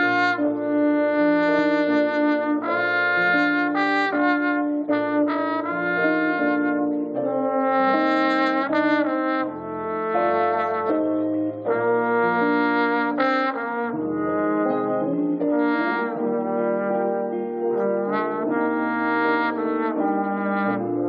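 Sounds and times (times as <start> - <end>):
trombone jazz solo: 0.0 - 21.0.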